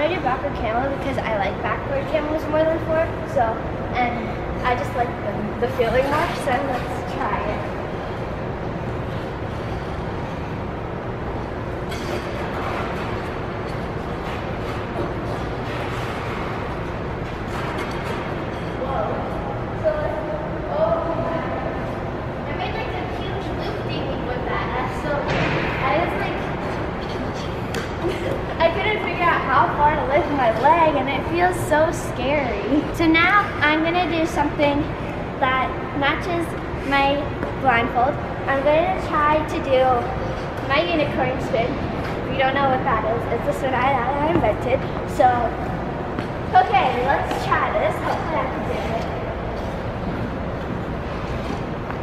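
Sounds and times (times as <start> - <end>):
ice rink hum: 0.0 - 52.0
girl's voice: 19.8 - 21.8, 22.4 - 26.5, 28.0 - 45.7, 46.5 - 49.2.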